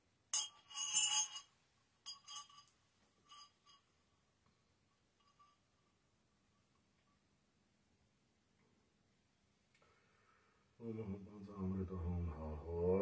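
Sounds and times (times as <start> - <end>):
small bells clinking and ringing: 0.3 - 7.3.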